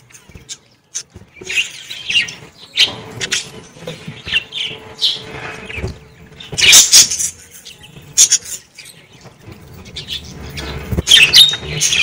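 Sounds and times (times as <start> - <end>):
budgerigars chirping: 0.3 - 9.2, 9.8 - 12.0.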